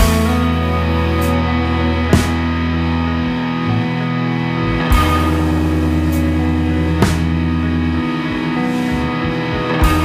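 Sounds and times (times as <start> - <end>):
live band playing: 4.8 - 10.0.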